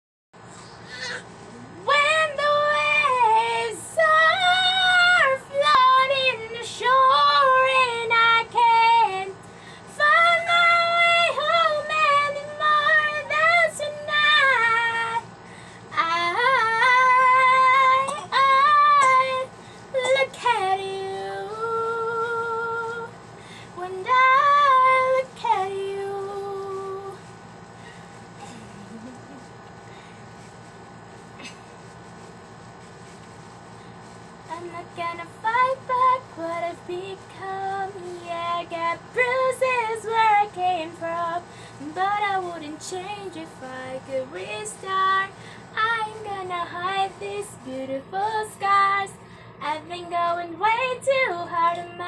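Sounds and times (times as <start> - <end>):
woman singing wordless notes: 15.9 - 23.1.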